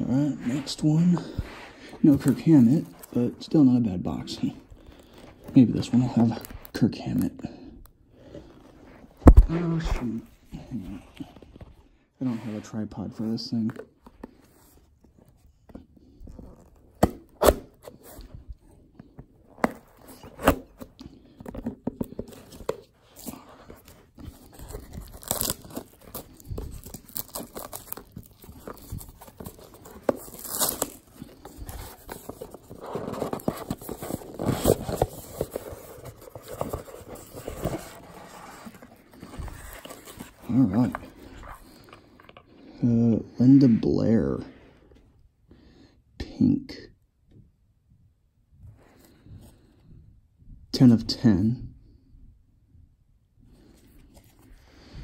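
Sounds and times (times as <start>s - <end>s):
cardboard scraping: 8.4s - 42.4s
packaging tearing and crinkling: 22.3s - 40.5s.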